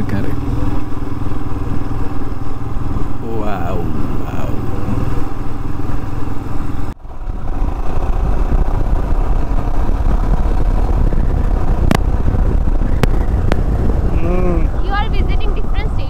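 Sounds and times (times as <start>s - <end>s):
motorcycle engine running: 0.0s - 16.0s
wind rumble on microphone: 0.0s - 16.0s.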